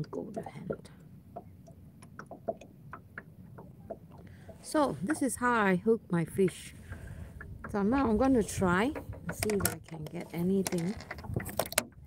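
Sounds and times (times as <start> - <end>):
small handling clicks: 9.0 - 11.9.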